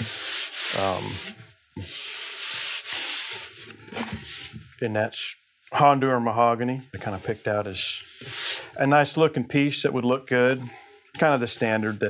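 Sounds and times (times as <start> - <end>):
palm rubbing guitar top: 0.0 - 4.6, 7.0 - 8.7, 10.3 - 12.0.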